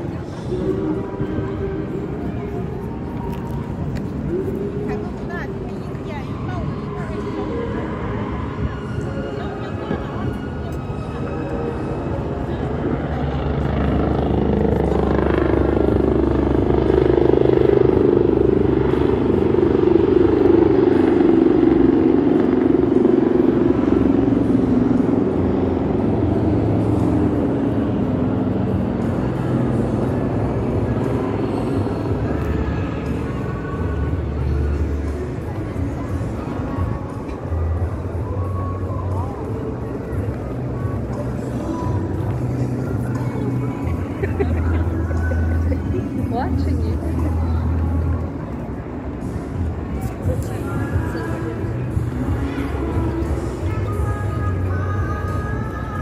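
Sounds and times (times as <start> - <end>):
low engine rumble: 0.0 - 56.0
music: 0.0 - 56.0
voices of passersby: 0.0 - 56.0.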